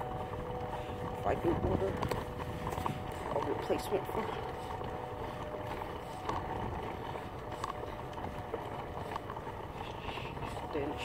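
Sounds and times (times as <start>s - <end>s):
plastic wheels rolling on asphalt: 0.0s - 11.0s.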